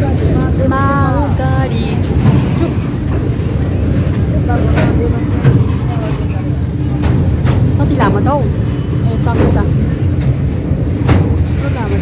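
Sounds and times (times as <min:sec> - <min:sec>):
train wheels rumbling on rail: 0:00.0 - 0:12.0
wagons clicking over track: 0:00.0 - 0:12.0.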